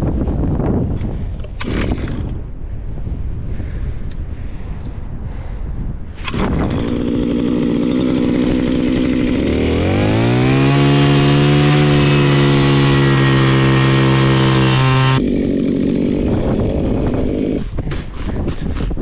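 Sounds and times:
auger boring through ice: 0:01.5 - 0:02.4, 0:06.2 - 0:18.8
small gas engine idling and revving: 0:01.5 - 0:02.4, 0:06.2 - 0:18.3.

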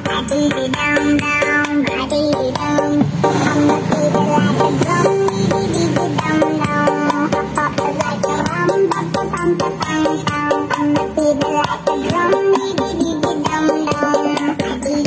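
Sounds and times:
music from small speaker: 0:00.0 - 0:15.0.

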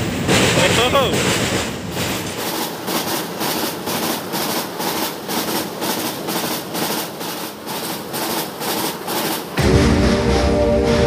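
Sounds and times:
wheels clattering over rail joints: 0:00.0 - 0:09.6
freight train rumbling: 0:00.0 - 0:11.0.

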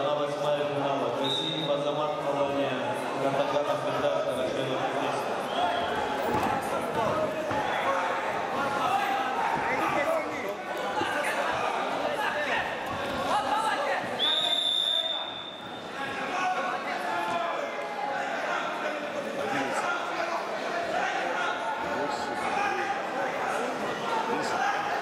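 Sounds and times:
people calling out in a hall: 0:00.0 - 0:25.0
referee whistle blast: 0:14.2 - 0:15.9.

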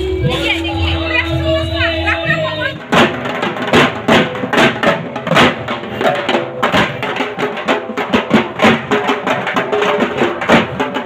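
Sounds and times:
barrel drums beaten with sticks: 0:00.0 - 0:11.0.

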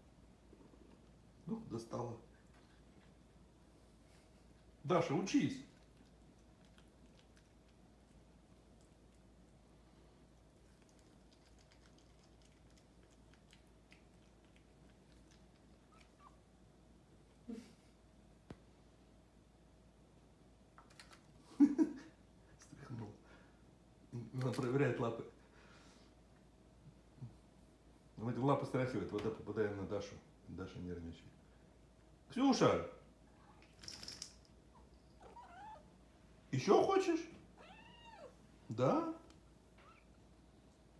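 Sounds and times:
cat vocalization: 0:10.8 - 0:16.5, 0:34.7 - 0:36.0, 0:37.5 - 0:38.4
cat meowing softly: 0:34.8 - 0:35.9, 0:37.5 - 0:38.5, 0:39.8 - 0:40.2.

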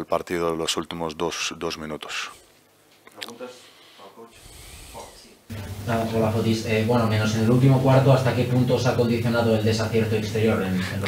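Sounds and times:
man speaking: 0:00.0 - 0:02.4, 0:03.1 - 0:11.0.

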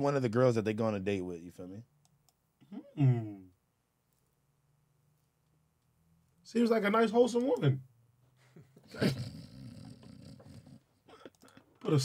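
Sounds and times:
man growling: 0:08.9 - 0:10.8.

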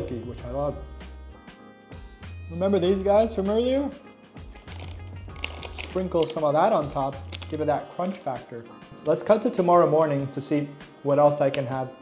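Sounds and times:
background music with bass line: 0:00.0 - 0:09.3
plastic snack packet crinkling: 0:04.5 - 0:07.6.

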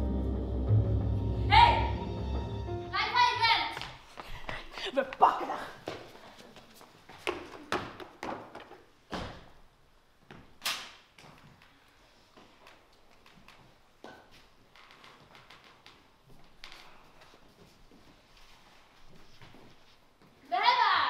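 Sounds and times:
footsteps on stage floor: 0:03.7 - 0:09.6, 0:11.2 - 0:20.5.

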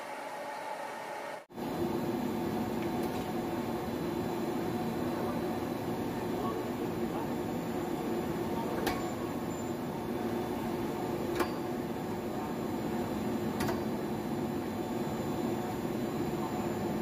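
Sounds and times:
film blowing machine humming: 0:00.0 - 0:17.0.

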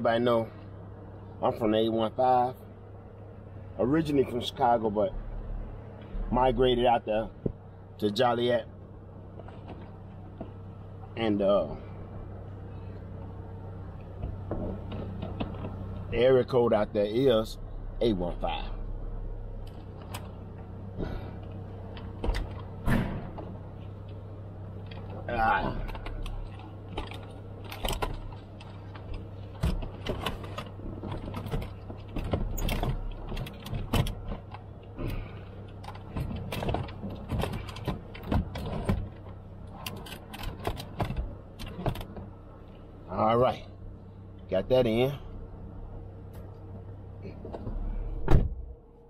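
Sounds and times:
steady low hum: 0:00.0 - 0:49.0
things handled inside a car: 0:00.0 - 0:49.0.

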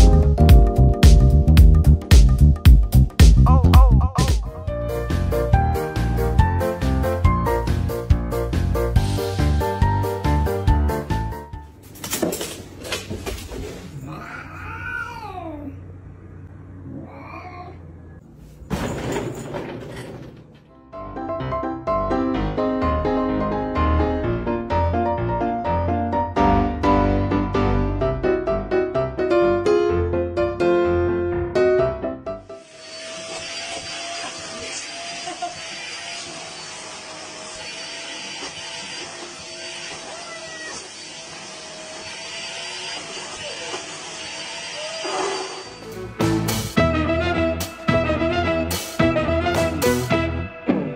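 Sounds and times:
cat meowing: 0:14.0 - 0:15.8, 0:16.9 - 0:17.9, 0:39.9 - 0:41.0
vacuum cleaner running: 0:32.5 - 0:46.0.

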